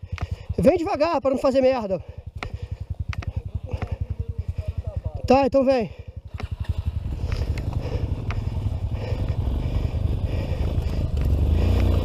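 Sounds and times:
motorcycle engine puttering: 0.0s - 12.0s.

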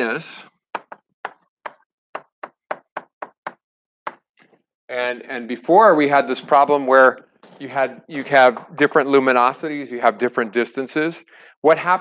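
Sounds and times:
chalk tapping on blackboard: 0.8s - 4.3s.

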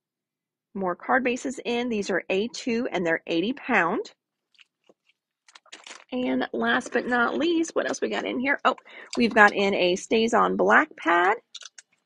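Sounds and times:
cellophane crinkling: 4.4s - 6.2s.

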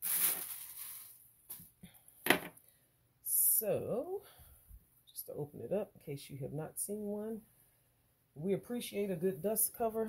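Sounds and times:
cloth bag rustling: 0.0s - 1.7s.

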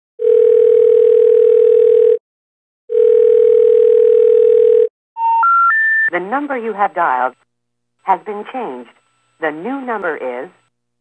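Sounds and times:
low telephone tones: 0.2s - 2.2s, 2.9s - 6.1s
rising telephone intercept tones: 4.1s - 6.1s.

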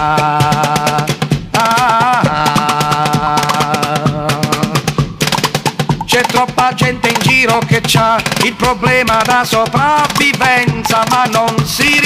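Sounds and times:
hand percussion on wooden chair: 0.0s - 12.0s.

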